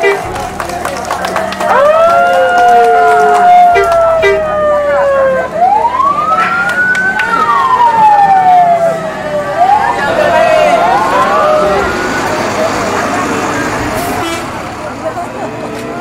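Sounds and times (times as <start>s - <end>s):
low engine hum: 0.0s - 16.0s
siren wailing: 1.6s - 13.2s.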